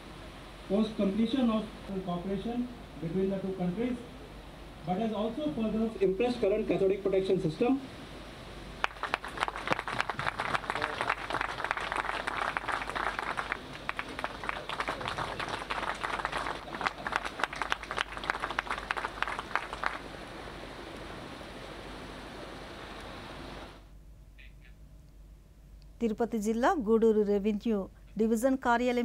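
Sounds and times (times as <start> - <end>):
low steady background noise: 0.0 - 29.0
audience applauding: 8.8 - 20.1.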